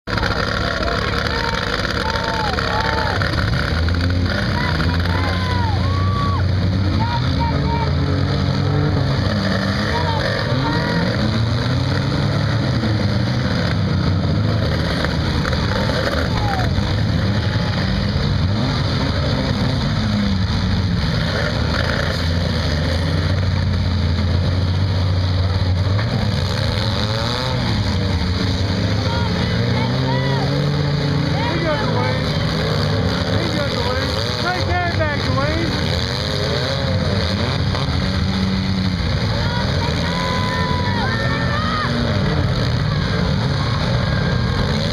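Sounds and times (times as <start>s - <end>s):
voices: 0.0s - 20.6s, 27.4s - 44.9s
car engines revving: 0.0s - 44.9s.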